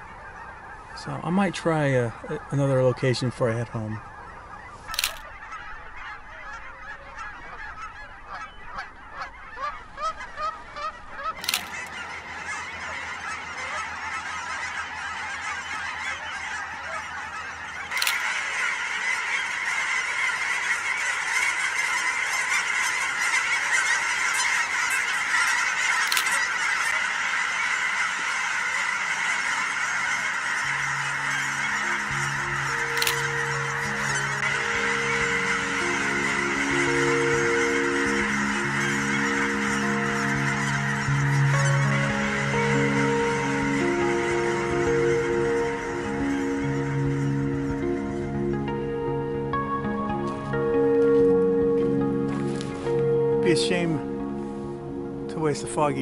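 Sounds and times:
geese honking: 0.0s - 56.0s
soft music with held notes: 28.7s - 56.0s.

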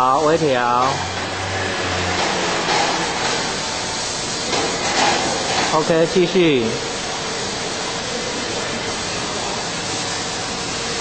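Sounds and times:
tool grinder running with hiss: 0.0s - 11.0s.

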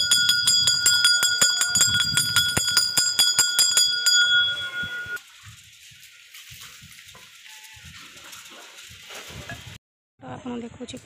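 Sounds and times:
metal bell struck rapidly: 0.0s - 5.2s.

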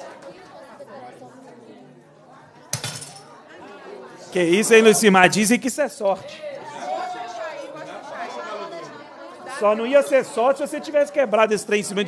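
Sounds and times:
crowd chatter in large hall: 0.0s - 12.0s.

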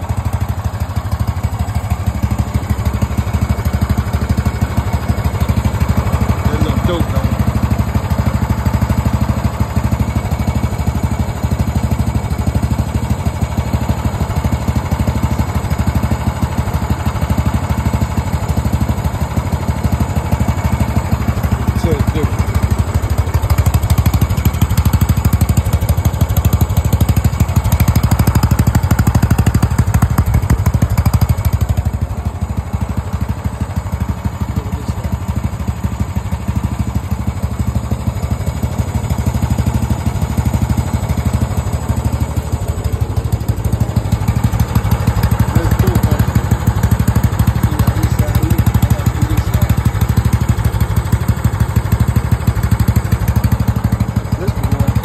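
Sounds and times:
lawn mower engine running: 0.0s - 55.0s.

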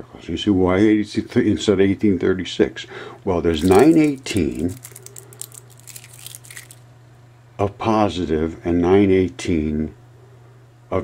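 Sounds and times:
magnet balls clicking: 3.6s - 6.8s.

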